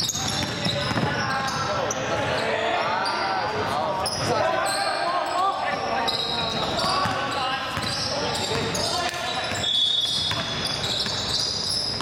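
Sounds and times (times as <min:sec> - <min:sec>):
sneakers squeaking: 0:00.0 - 0:12.0
basketball bouncing: 0:00.2 - 0:01.1, 0:07.8 - 0:11.3.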